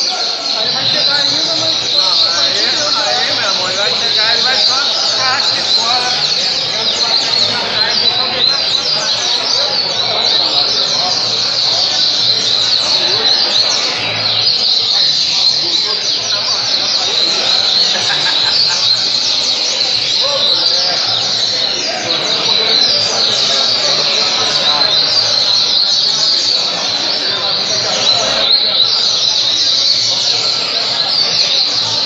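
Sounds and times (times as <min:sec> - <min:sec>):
other songbirds singing: 0:00.0 - 0:32.0
songbird fast chirping: 0:00.0 - 0:32.0.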